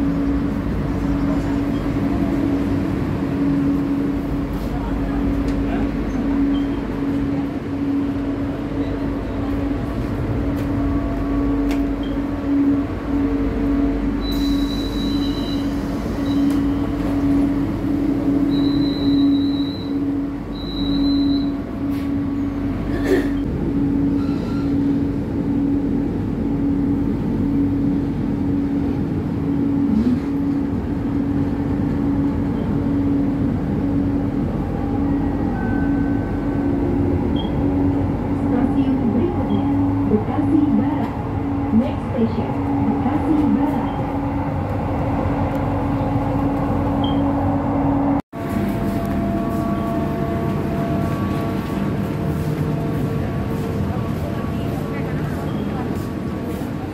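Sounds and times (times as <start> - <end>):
light-rail train running: 0.0 - 56.9.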